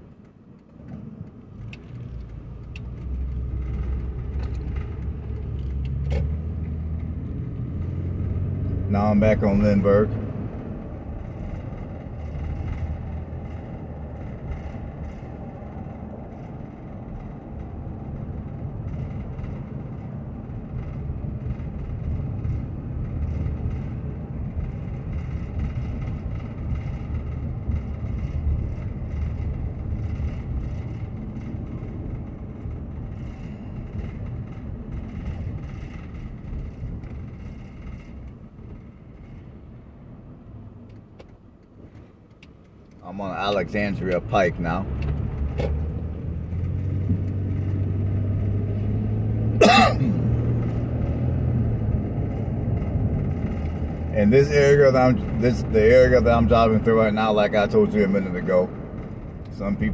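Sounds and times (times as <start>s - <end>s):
car engine and tyre rumble: 0.0s - 59.9s.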